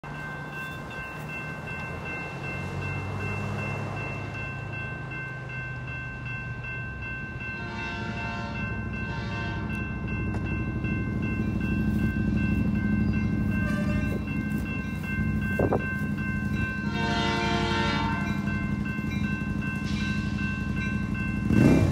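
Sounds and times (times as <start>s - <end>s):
crossing warning bell ringing: 0.0s - 21.9s
locomotive air horn: 7.6s - 9.8s, 13.6s - 14.2s, 16.8s - 18.4s
diesel engine rumble: 8.6s - 21.9s.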